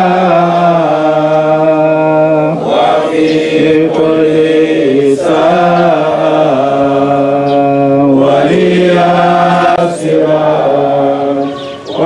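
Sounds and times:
man chanting a lament through loudspeaker: 0:00.0 - 0:12.0.

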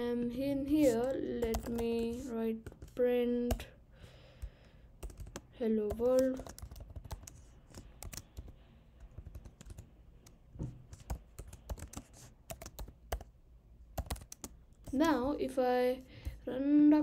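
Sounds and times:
typing on computer keyboard: 0:01.0 - 0:03.7, 0:05.0 - 0:13.3, 0:14.0 - 0:15.0.

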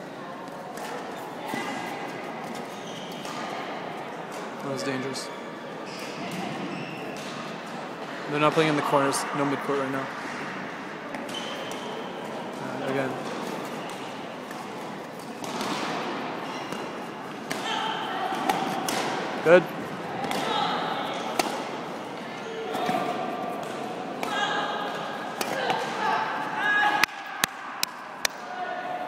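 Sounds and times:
voices echoing in a hall: 0:00.0 - 0:29.0
rackets striking shuttlecock: 0:13.2 - 0:19.4, 0:20.2 - 0:20.5, 0:21.2 - 0:21.9, 0:22.8 - 0:26.0.

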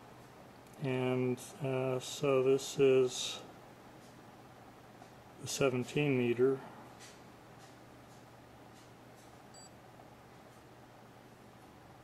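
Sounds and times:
low steady hum: 0:00.0 - 0:12.0
faint high-pitched beep: 0:09.6 - 0:09.8.

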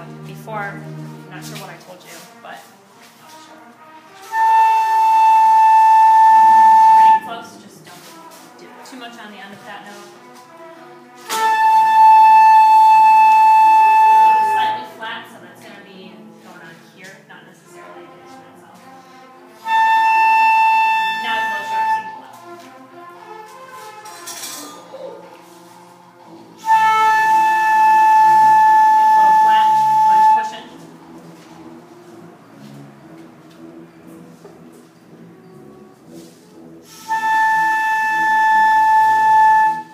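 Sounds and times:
flute holding high note: 0:04.2 - 0:08.4, 0:11.2 - 0:15.0, 0:19.6 - 0:22.5, 0:23.8 - 0:30.9, 0:35.4 - 0:39.9.

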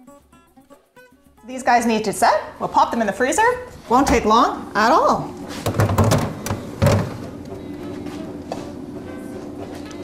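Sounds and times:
soft background music: 0:00.0 - 0:05.4, 0:06.7 - 0:10.0
freezer door thuds: 0:05.6 - 0:07.4.

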